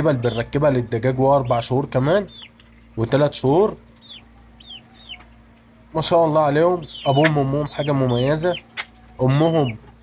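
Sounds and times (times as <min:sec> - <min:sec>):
chicks peeping: 0:00.0 - 0:10.0.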